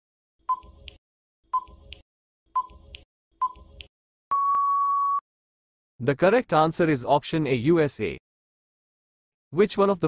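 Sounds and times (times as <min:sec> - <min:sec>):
long steady beep: 0:04.3 - 0:05.2.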